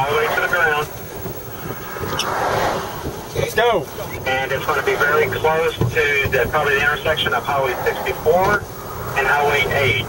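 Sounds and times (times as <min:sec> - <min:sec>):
highway traffic rush: 0:00.0 - 0:10.0.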